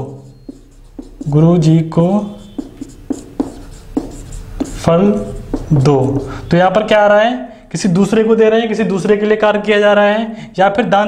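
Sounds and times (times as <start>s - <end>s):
marker pen scratching on whiteboard: 0.0s - 6.8s.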